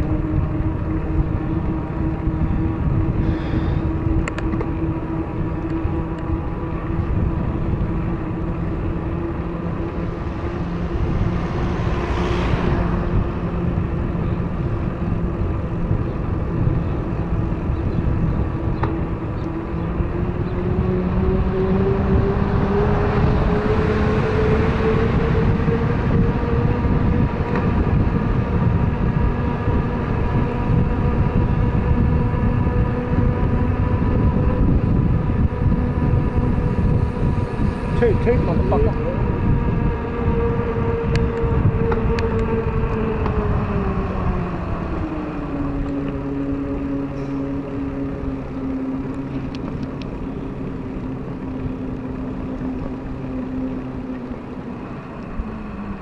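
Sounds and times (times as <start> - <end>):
steady whine: 0.0 - 56.0
wind rumbling on microphone: 0.0 - 56.0.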